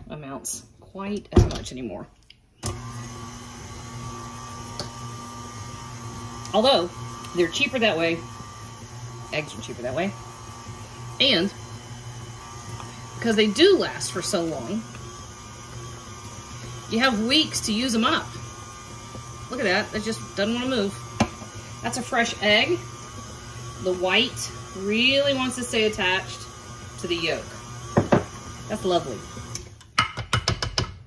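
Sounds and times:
stand mixer humming: 0:02.6 - 0:29.8
paddle beating cake batter: 0:02.7 - 0:31.0.

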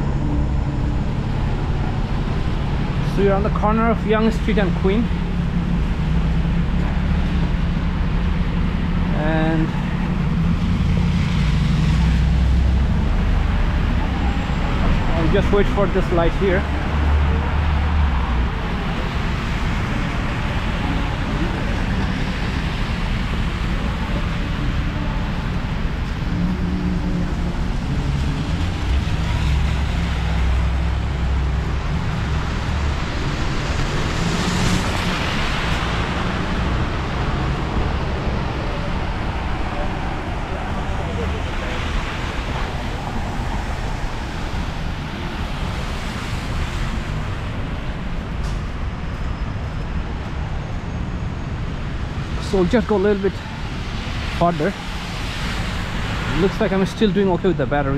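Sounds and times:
bus passing: 0:00.0 - 0:57.9
car engines: 0:00.0 - 0:57.9.

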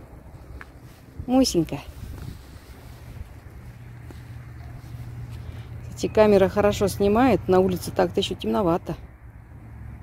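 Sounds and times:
faint distant traffic hum: 0:00.0 - 0:10.0
wind buffeting microphone: 0:00.2 - 0:05.4.

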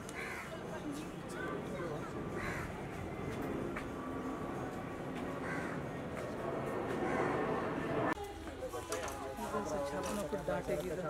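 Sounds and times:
murmur of voices: 0:00.0 - 0:11.0
crow cawing: 0:00.1 - 0:00.6, 0:02.3 - 0:03.0, 0:05.4 - 0:06.0, 0:07.0 - 0:07.6.

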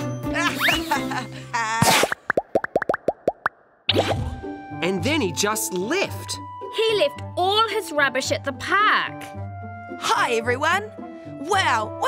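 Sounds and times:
rising-pitch bloop pops: 0:01.9 - 0:04.4.

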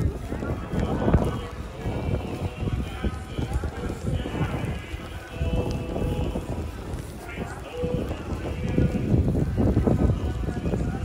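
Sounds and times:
footsteps on snow: 0:00.0 - 0:11.0
voices of passers-by: 0:00.0 - 0:11.0.

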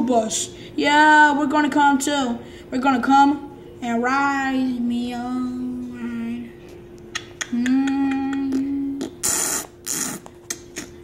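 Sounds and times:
person humming: 0:07.2 - 0:11.0.

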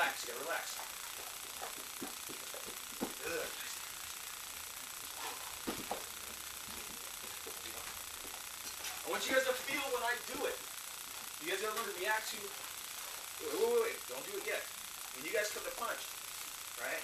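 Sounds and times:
steady hiss: 0:00.0 - 0:17.0
footsteps on foam mats: 0:01.2 - 0:03.2, 0:05.1 - 0:08.9.

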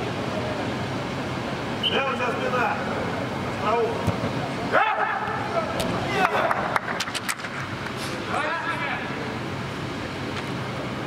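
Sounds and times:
hall background noise: 0:00.0 - 0:11.0
player shouting: 0:04.7 - 0:06.7.

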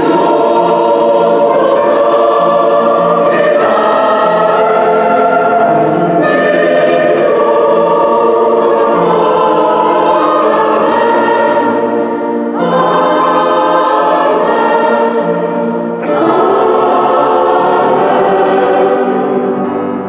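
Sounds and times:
mixed choir singing sacred music: 0:00.0 - 0:20.0.

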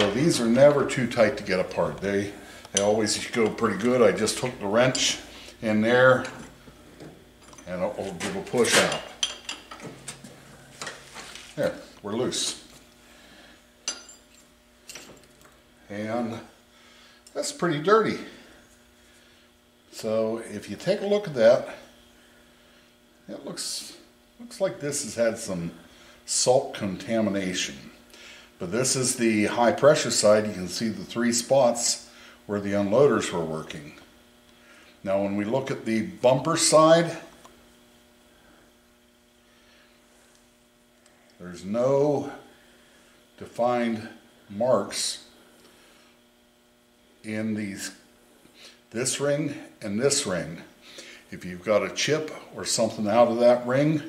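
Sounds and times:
faint electrical hum: 0:00.0 - 0:54.0.

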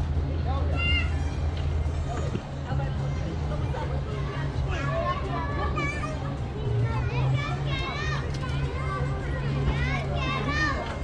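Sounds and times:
visitors' voices: 0:00.0 - 0:11.0.

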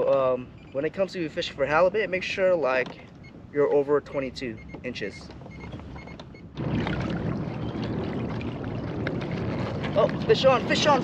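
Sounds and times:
water splashing against hull: 0:02.8 - 0:11.0.

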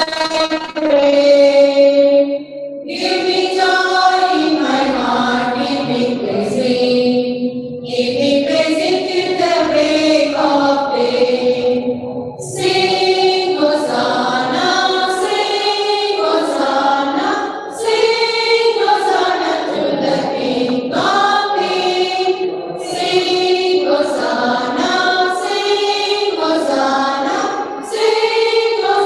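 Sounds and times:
women's choir singing: 0:00.0 - 0:29.0.

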